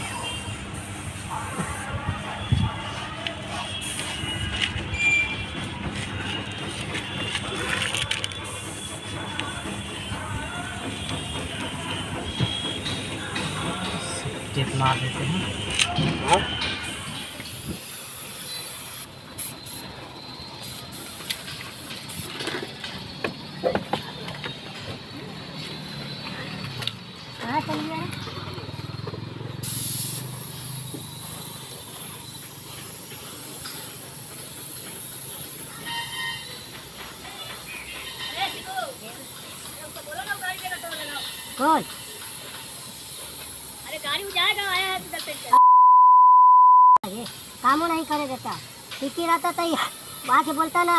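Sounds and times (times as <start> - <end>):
spray gun air hiss: 0.1 - 3.0, 3.6 - 4.7, 16.8 - 22.4, 29.6 - 37.4, 38.3 - 45.6, 47.1 - 50.9.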